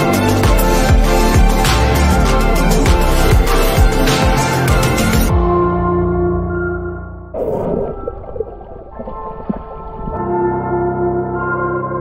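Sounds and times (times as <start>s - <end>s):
ambient music: 0.0s - 12.0s
underwater moving water bubbling: 7.4s - 10.5s.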